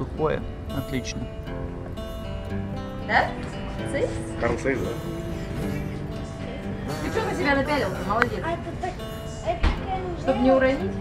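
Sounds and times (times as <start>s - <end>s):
background music: 0.0s - 11.0s
indistinct voices talking: 0.0s - 11.0s.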